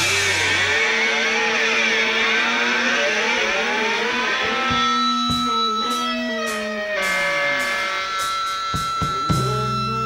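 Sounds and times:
electric guitar feedback: 0:00.0 - 0:10.0.

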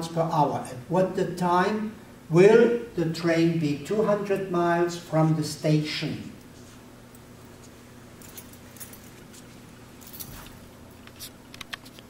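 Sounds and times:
steady low hum: 0:00.0 - 0:12.0
faint light clicks and jingles: 0:08.2 - 0:09.3.

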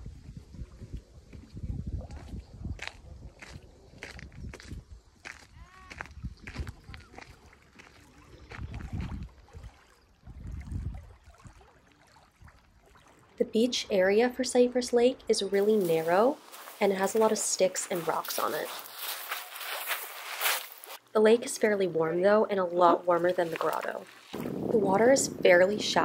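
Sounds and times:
wind gusts on microphone: 0:00.0 - 0:07.4, 0:08.2 - 0:11.6, 0:24.3 - 0:26.0
crunching footsteps: 0:02.8 - 0:09.2, 0:15.5 - 0:21.0, 0:22.8 - 0:24.6
waves lapping on shore: 0:07.0 - 0:14.4, 0:15.0 - 0:21.0, 0:22.8 - 0:26.0.

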